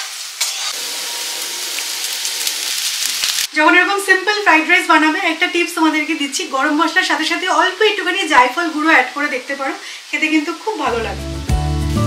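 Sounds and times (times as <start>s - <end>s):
vegetables sizzling in a wok: 0.0s - 12.0s.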